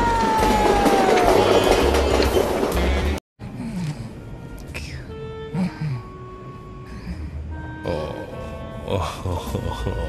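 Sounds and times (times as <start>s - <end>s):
roller coaster car rattling: 0.0s - 3.2s
music: 0.1s - 10.0s.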